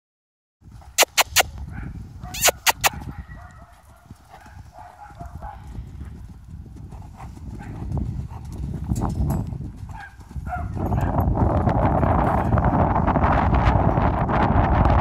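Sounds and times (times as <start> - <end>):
hoofbeats on sand: 0.6 - 14.0
sharp clicks: 1.0 - 1.5, 2.4 - 2.9.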